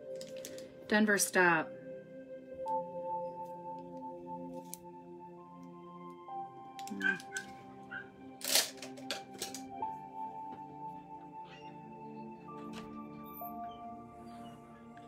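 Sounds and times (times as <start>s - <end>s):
ambient music of held tones: 0.0s - 15.0s.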